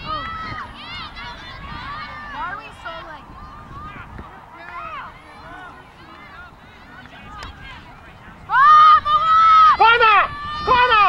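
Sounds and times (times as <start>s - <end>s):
women shouting and calling out: 0.0s - 7.9s, 8.5s - 11.0s.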